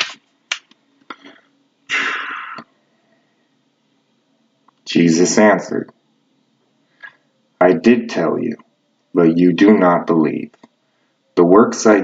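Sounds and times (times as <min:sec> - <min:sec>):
paper rustling: 0:00.0 - 0:00.7
book pages clicking: 0:00.0 - 0:00.8.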